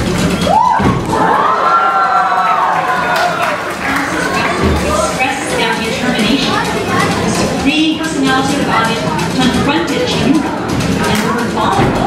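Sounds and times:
crowd cheering: 0.0s - 7.6s
children shouting: 0.4s - 7.6s.

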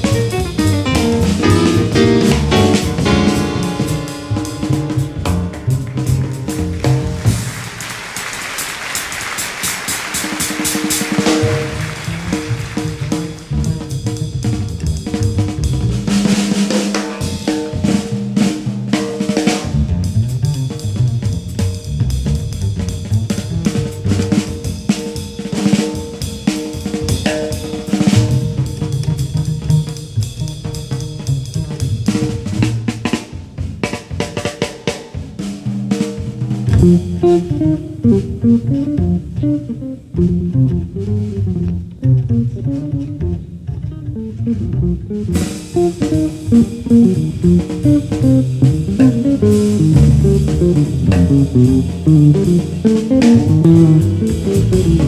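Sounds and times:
snare and bass drum playing: 0.0s - 55.0s.

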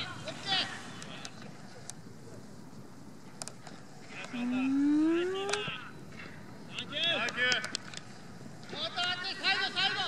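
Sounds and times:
people shouting short calls: 4.3s - 5.9s.

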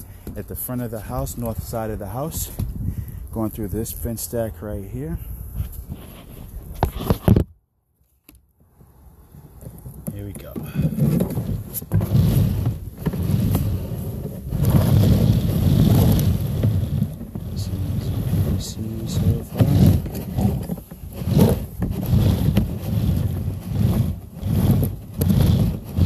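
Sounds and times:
cable rumbling and thumping in pipe: 0.0s - 4.3s, 5.5s - 7.6s, 8.6s - 26.0s.

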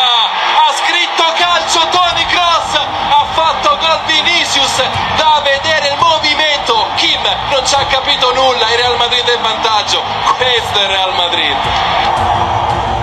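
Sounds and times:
man commentating excitedly: 0.0s - 11.8s.

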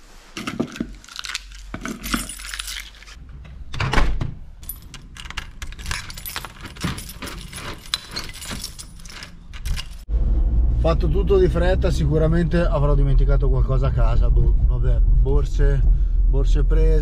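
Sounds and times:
keys jangling: 0.4s - 3.2s, 4.6s - 10.1s
key turning in lock: 4.6s - 10.0s.

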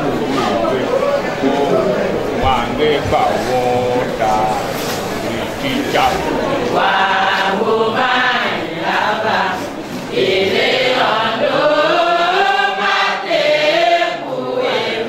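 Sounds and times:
group singing a hymn: 2.4s - 15.0s.

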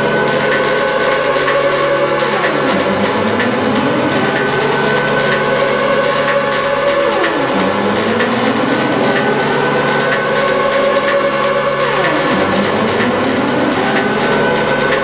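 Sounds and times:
noisy electronic drone: 0.0s - 15.0s
rising pitch sweeps: 0.0s - 15.0s.

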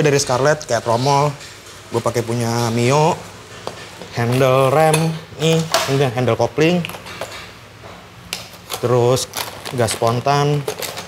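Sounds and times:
plastic packaging crinkling: 8.4s - 11.0s.

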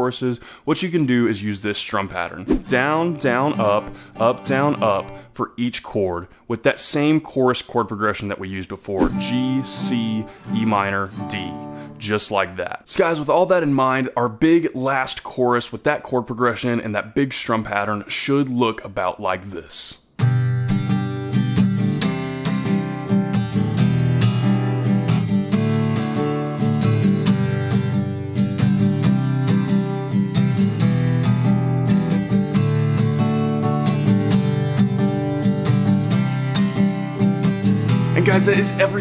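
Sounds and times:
acoustic guitar strumming: 2.6s - 5.3s, 9.0s - 12.0s, 20.2s - 39.0s.

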